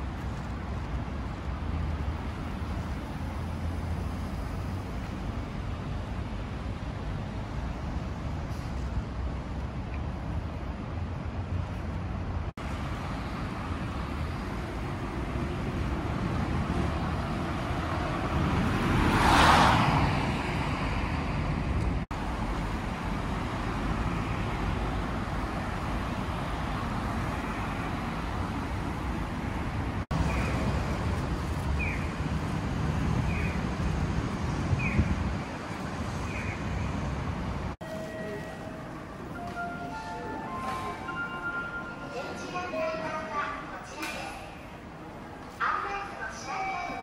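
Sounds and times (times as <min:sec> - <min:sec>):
street traffic noise: 0:00.0 - 0:47.0.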